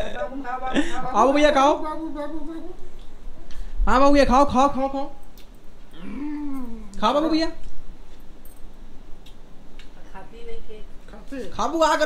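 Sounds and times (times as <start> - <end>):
person making wordless aaa sounds: 5.9 - 7.0.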